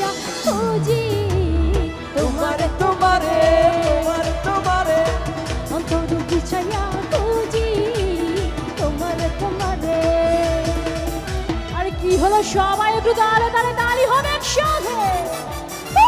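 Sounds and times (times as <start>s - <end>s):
band playing: 0.0s - 16.0s
fast drum beat: 0.0s - 16.0s
woman singing into microphone: 0.0s - 16.0s.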